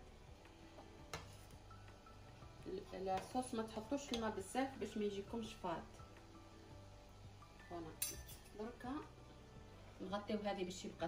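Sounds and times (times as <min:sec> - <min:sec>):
metal ladle clinking on pot: 0:08.0 - 0:08.6.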